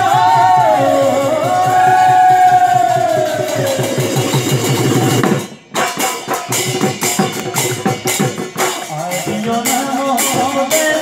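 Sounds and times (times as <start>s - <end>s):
dhol drum beat: 0.0s - 11.0s
sharp percussion strikes: 0.0s - 11.0s.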